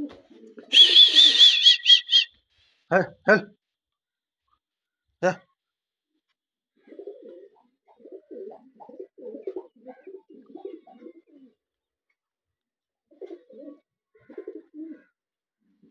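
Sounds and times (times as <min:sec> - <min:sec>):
pigeons cooing: 0:00.0 - 0:02.3, 0:06.8 - 0:11.6, 0:13.1 - 0:15.1.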